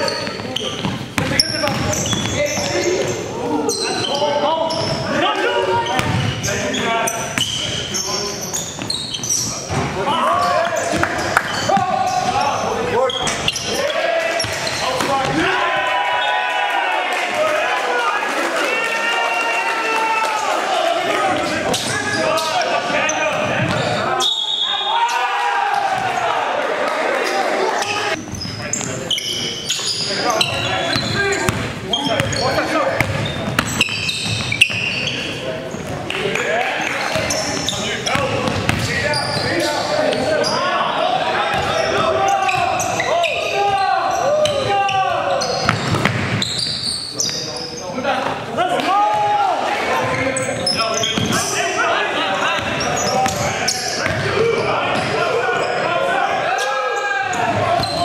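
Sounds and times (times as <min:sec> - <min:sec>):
sneakers squeaking: 0:00.0 - 0:15.5, 0:21.3 - 0:26.4, 0:27.1 - 0:58.0
players calling out: 0:00.0 - 0:58.0
basketball bouncing on hardwood: 0:38.2 - 0:38.9.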